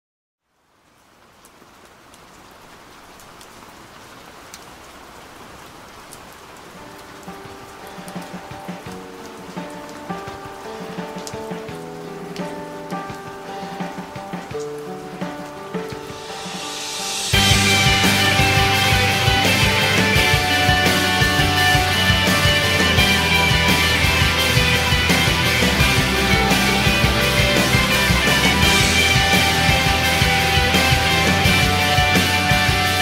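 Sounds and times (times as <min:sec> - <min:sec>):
rain hiss with drops: 0:00.4 - 0:33.0.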